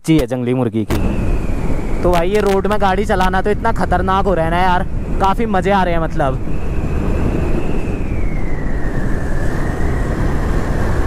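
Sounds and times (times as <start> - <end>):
high whine sliding down: 0.9 - 11.0
motorcycle riding at speed: 0.9 - 11.0
wind buffeting microphone: 0.9 - 11.0.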